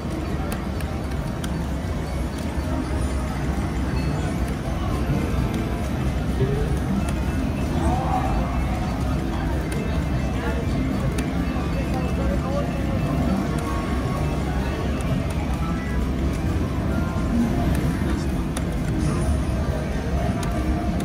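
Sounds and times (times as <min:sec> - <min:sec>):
background music: 0:00.0 - 0:21.0
indistinct voices: 0:04.0 - 0:21.0.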